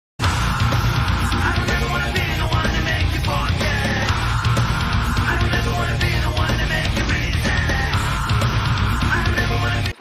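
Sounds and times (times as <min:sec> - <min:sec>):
heavy rock music: 0:00.2 - 0:10.0.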